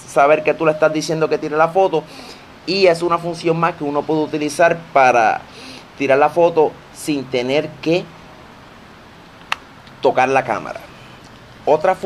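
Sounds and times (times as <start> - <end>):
faint background hiss: 0.0 - 12.0
sharp short click: 9.4 - 10.0.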